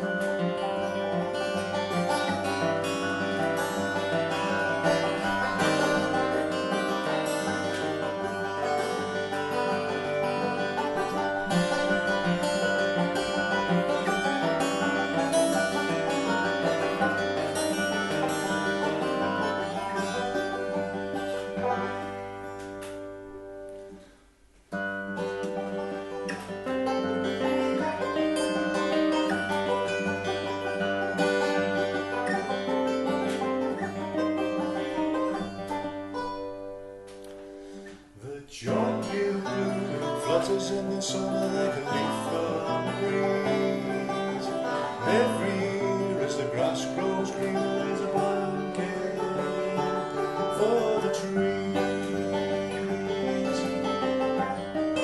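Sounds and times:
acoustic guitar and banjo playing: 0.0s - 55.0s.

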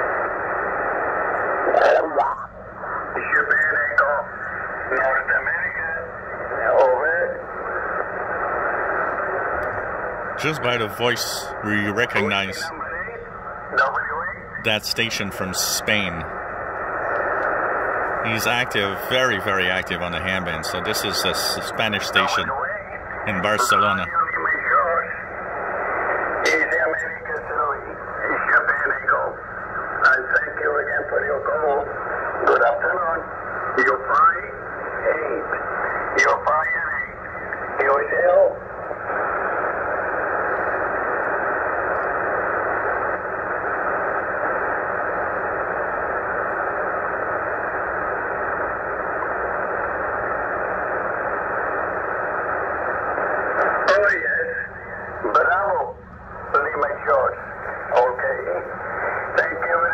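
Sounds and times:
radio static hiss: 0.0s - 59.9s
radio voice through speaker: 1.6s - 7.4s, 10.4s - 16.4s, 18.2s - 25.2s, 26.4s - 38.6s, 53.4s - 59.9s.

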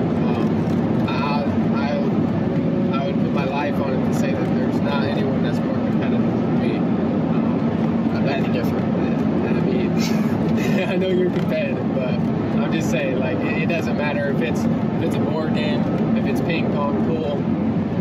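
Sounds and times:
car road and engine noise: 0.0s - 18.0s
man talking: 0.2s - 2.2s, 2.9s - 17.4s.

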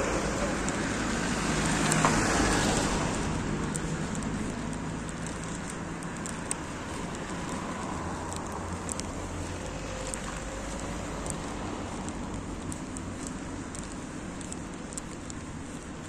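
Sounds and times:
traffic rumble: 0.0s - 16.0s.

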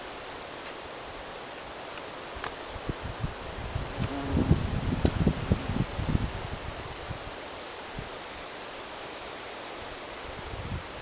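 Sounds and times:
outdoor hiss: 0.0s - 11.0s
wind buffeting microphone: 2.8s - 7.3s, 10.3s - 11.0s.

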